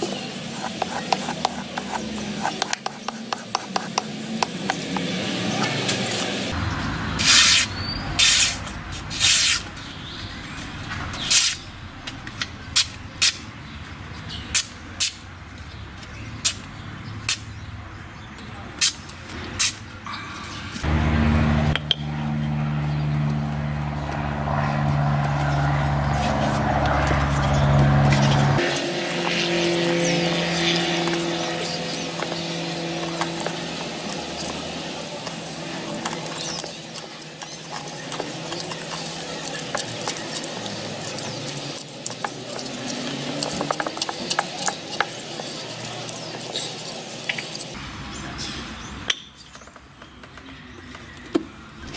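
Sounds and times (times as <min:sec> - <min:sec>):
steady low drone: 0:20.1 - 0:36.0.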